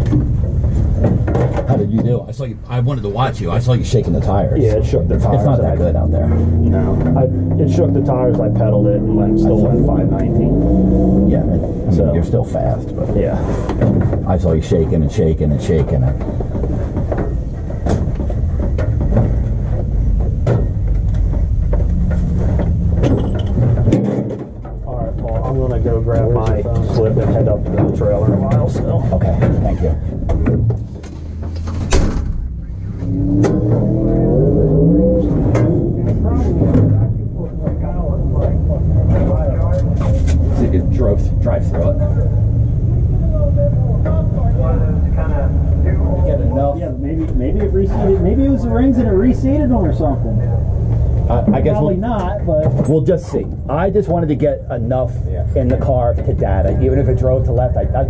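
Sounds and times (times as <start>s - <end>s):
steady low rumble: 0.0s - 58.0s
indistinct talking: 1.5s - 17.9s, 32.5s - 58.0s.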